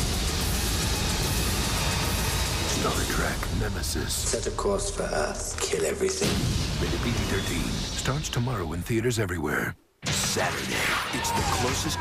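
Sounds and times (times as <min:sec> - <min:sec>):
film trailer music: 0:00.0 - 0:08.9, 0:10.0 - 0:12.0.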